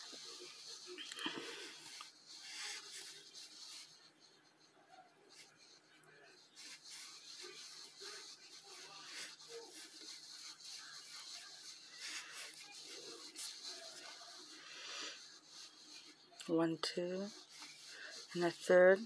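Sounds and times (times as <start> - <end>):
yarn scratching and rustling: 0.0 - 4.2, 5.3 - 19.0.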